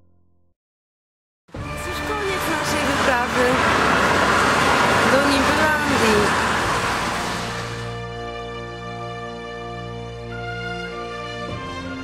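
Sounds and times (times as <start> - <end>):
road traffic passing: 1.6 - 8.3
woman's voice: 1.7 - 3.6, 5.0 - 6.4.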